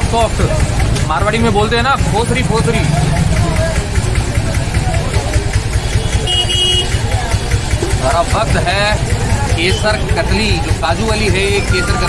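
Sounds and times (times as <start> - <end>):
faint background voices: 0.0 - 12.0
street noise rumble: 0.0 - 12.0.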